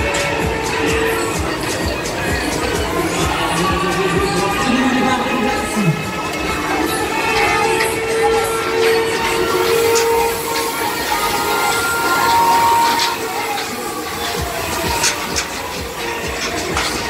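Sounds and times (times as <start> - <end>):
loud fairground music: 0.0 - 17.0
ride running noise: 0.0 - 17.0.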